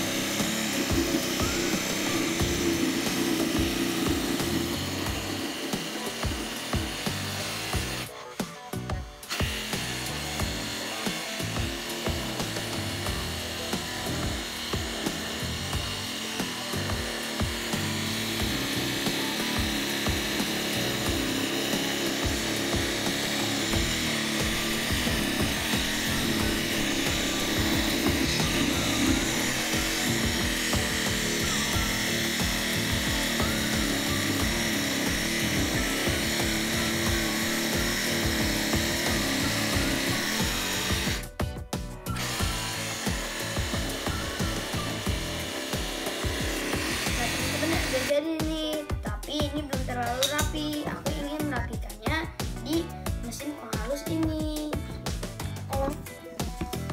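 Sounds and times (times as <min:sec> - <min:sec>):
scroll saw cutting plywood: 0:00.0 - 0:41.4, 0:42.0 - 0:48.2.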